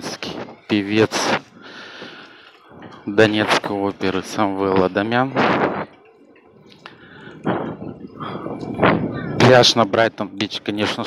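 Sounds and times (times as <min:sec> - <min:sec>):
man's voice: 0:00.0 - 0:01.5, 0:02.9 - 0:05.4, 0:09.4 - 0:11.0
faint breath hiss: 0:00.3 - 0:03.2.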